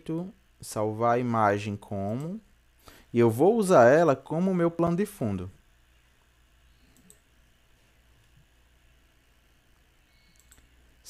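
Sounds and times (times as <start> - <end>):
faint computer mouse click: 6.7 - 7.3, 10.1 - 10.8.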